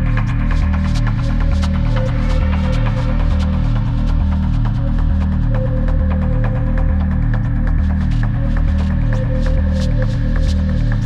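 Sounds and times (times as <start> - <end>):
pulsing bass drone: 0.0 - 11.0
ticking hi-hats: 0.0 - 11.0.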